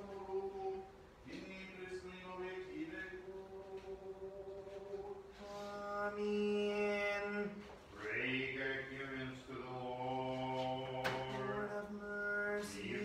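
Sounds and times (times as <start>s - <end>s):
liturgical chant in long notes: 0.0s - 13.0s.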